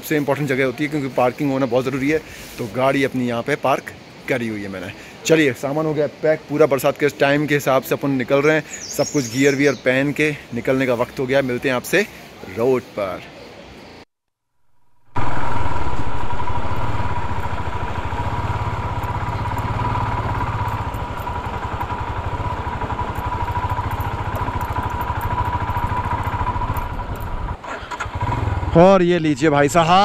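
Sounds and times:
motorcycle engine running: 15.0s - 28.8s.

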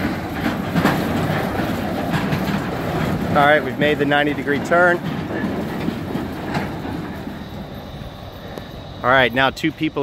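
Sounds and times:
steel barriers rattling over pavement: 0.0s - 10.0s.

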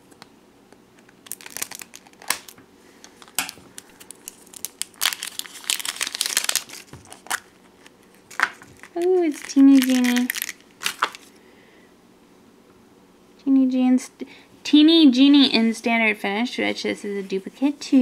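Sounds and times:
plastic crinkling and clicks: 1.0s - 11.3s.

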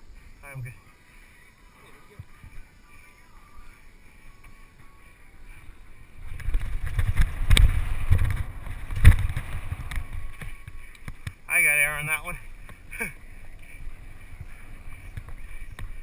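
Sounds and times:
tyres on dirt: 0.0s - 16.0s
wind buffeting microphone: 5.5s - 11.5s, 12.3s - 16.0s.

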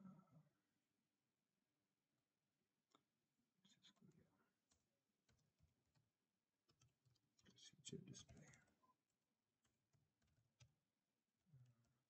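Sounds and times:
faint keyboard typing: 3.8s - 10.9s.

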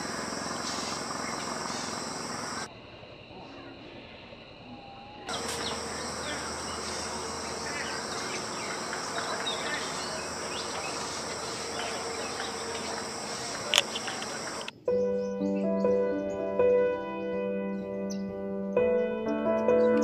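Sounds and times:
short insect chirps: 0.0s - 3.0s, 4.4s - 14.8s
crickets trilling: 0.0s - 16.9s
sharp click: 13.6s - 14.7s.

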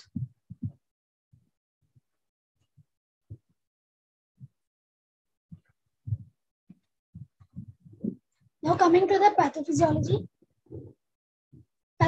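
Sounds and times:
faint low thumps: 5.5s - 6.3s.

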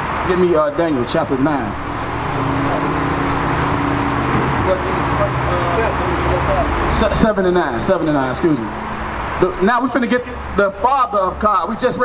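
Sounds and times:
vehicle passing close by: 0.0s - 10.6s.

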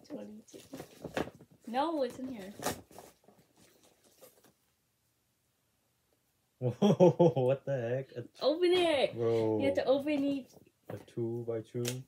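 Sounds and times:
paper gift bag rustling: 0.5s - 4.6s.

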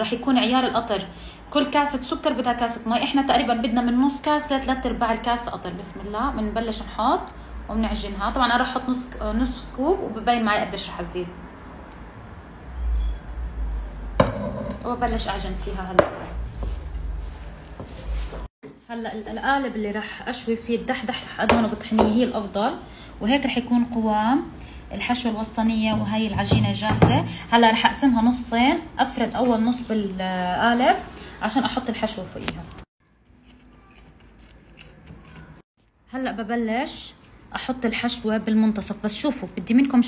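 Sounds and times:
glass jar knocking on wooden table: 14.2s - 14.8s
gloved hand rubbing dough: 33.2s - 35.7s.

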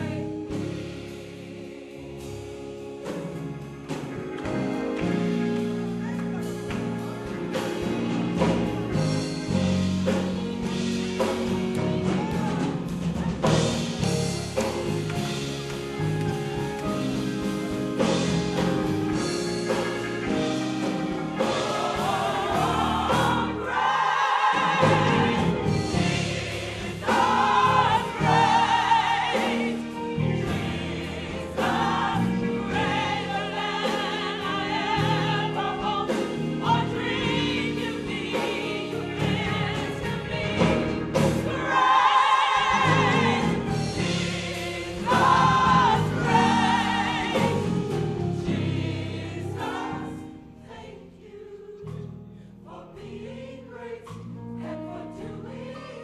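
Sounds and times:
gospel choir singing with band: 0.0s - 56.0s.

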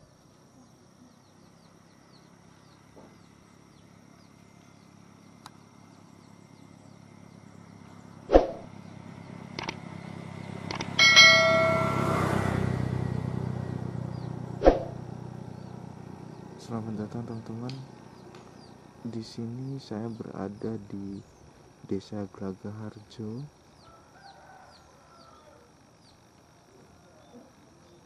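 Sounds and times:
high insect tone: 0.0s - 28.0s
motorcycle engine passing: 6.9s - 19.1s
sharp clicks: 9.5s - 9.8s, 10.7s - 11.0s
brief chime: 11.0s - 12.6s.

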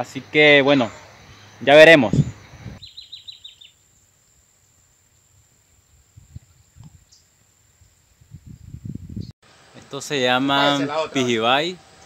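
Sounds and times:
bird chirps: 2.2s - 4.8s.

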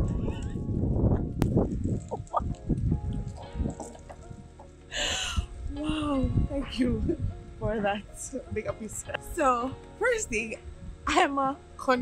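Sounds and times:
wind rumble: 0.0s - 12.0s.

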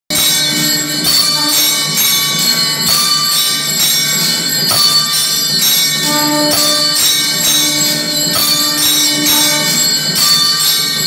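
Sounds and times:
temple bells ringing: 0.1s - 11.0s.

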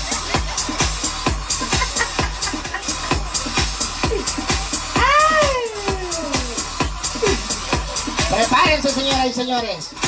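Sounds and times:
dance music with kick drum: 0.0s - 10.0s.

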